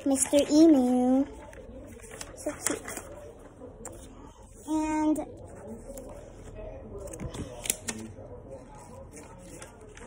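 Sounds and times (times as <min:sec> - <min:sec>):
faint voice: 0:00.0 - 0:10.0.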